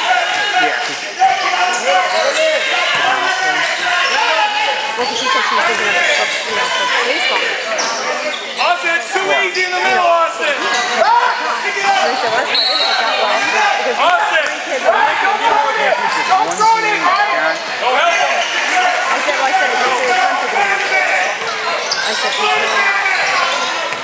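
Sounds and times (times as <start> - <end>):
voices calling out: 0.0 - 24.0.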